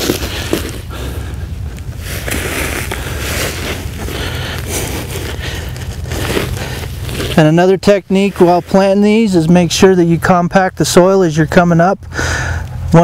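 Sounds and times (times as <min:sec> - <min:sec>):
hands scraping dry soil: 0:00.0 - 0:09.9
steady low rumble: 0:00.0 - 0:13.0.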